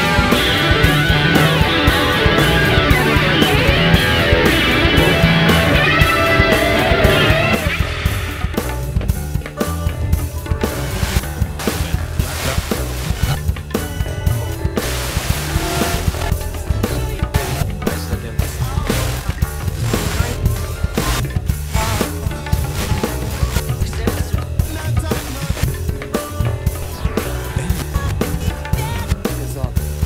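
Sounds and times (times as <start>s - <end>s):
bass guitar: 0.0s - 30.0s
electric guitars: 0.0s - 30.0s
programmed drums and percussion: 0.0s - 30.0s.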